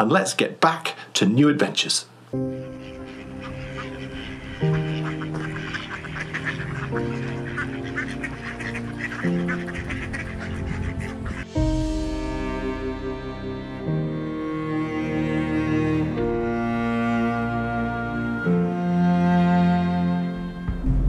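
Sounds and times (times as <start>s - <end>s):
background music with held chords: 2.3s - 21.0s
ducks quacking: 2.4s - 11.8s.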